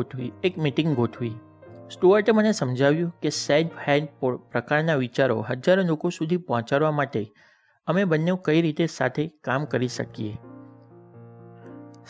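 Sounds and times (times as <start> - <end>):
soft keyboard chords: 0.0 - 5.7, 9.6 - 12.0
man narrating: 0.0 - 10.5.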